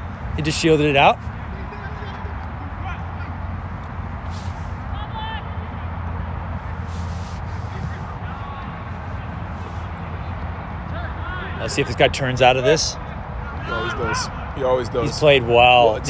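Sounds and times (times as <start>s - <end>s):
distant players' voices: 0.0s - 16.0s.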